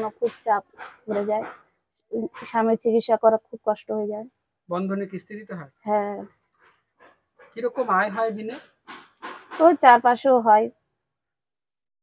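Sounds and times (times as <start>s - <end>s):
woman speaking: 0.0s - 1.5s, 2.1s - 4.3s, 5.9s - 6.3s, 9.6s - 10.7s.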